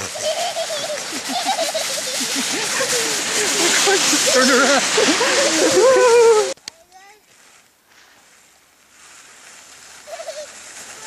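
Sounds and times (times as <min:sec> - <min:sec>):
sled hissing on snow: 0:00.0 - 0:06.6, 0:08.2 - 0:11.0.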